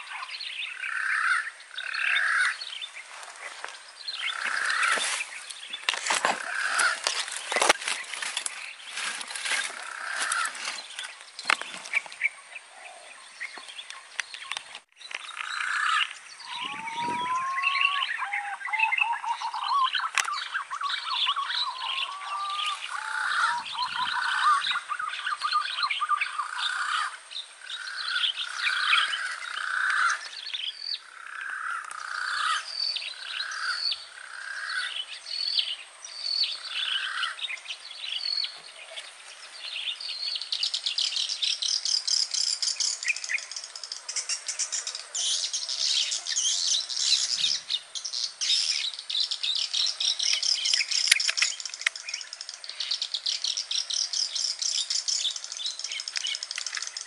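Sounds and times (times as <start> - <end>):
birds chirping rapidly: 0.0 - 57.0.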